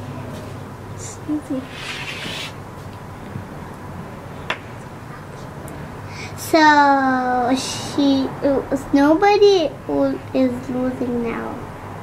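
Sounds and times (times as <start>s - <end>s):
wood rubbing on wood: 1.6s - 2.6s.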